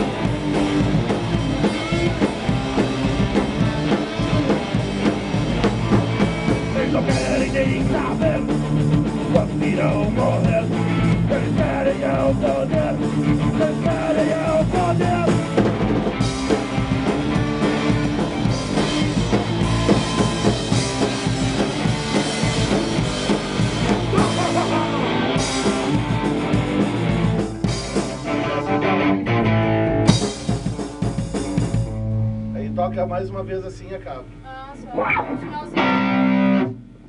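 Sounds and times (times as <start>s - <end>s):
bass: 0.0s - 37.0s
distorted electric guitars: 0.0s - 37.0s
drum kit: 0.0s - 37.0s
person singing: 6.7s - 8.6s, 9.3s - 15.4s, 24.1s - 25.3s
loud drum hit: 14.0s - 28.3s, 30.0s - 32.1s.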